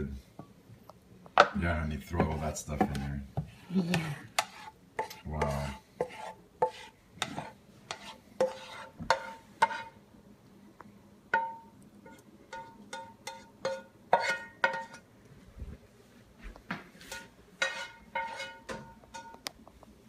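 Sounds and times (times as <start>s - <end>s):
spatula scraping frying pan: 3.9s - 10.0s, 12.0s - 15.1s, 17.0s - 19.4s.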